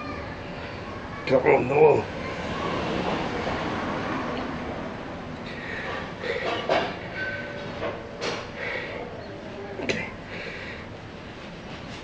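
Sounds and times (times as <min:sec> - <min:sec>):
man breathing hard: 0:05.5 - 0:06.8, 0:08.5 - 0:09.1, 0:10.2 - 0:11.0.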